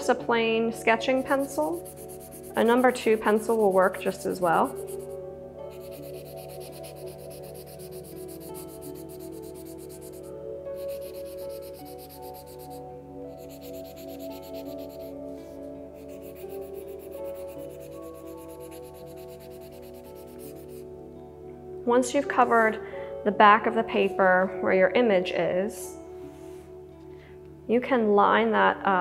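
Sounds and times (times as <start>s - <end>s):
soft background music: 0.0s - 29.0s
pencil scribbling on paper: 1.0s - 12.8s, 13.4s - 15.1s, 16.0s - 20.8s.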